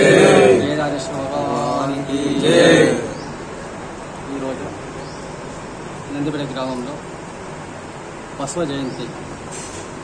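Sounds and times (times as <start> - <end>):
man chanting in long tones: 0.0 - 3.2.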